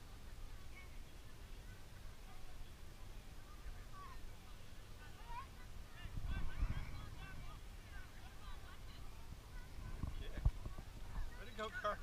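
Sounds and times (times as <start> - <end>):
wind noise on microphone: 5.3 - 11.6.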